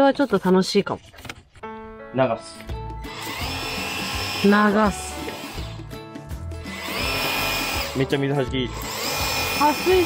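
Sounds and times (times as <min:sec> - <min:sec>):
pressure washer motor: 0:03.1 - 0:05.8, 0:06.7 - 0:10.0.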